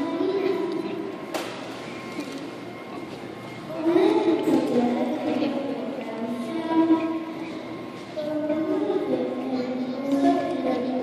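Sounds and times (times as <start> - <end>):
child singing into microphone: 3.7 - 7.3, 8.1 - 11.0.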